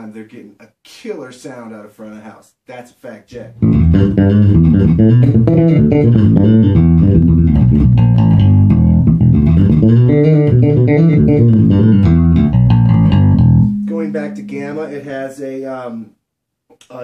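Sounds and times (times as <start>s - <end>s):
plucked bass guitar notes: 3.5s - 15.3s.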